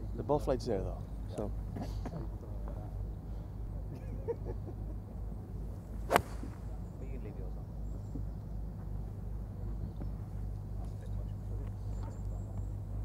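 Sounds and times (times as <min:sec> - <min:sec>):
golf club striking ball: 0:06.0 - 0:06.8.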